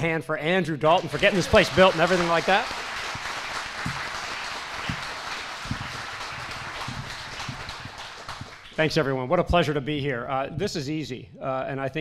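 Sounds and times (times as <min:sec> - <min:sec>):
audience applauding: 0:01.0 - 0:09.1.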